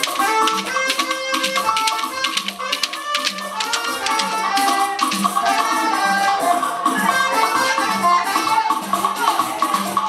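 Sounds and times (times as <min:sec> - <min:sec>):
rattle hits: 0:00.0 - 0:05.7
sharp percussion strokes: 0:00.0 - 0:06.2
held instrument notes: 0:00.0 - 0:06.6.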